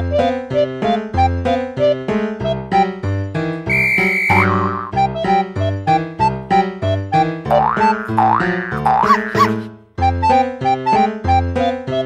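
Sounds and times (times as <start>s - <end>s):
bouncy keyboard music with beat: 0.0s - 3.0s, 4.2s - 12.0s
cartoon boing sound effects: 4.3s - 5.0s, 7.5s - 9.6s.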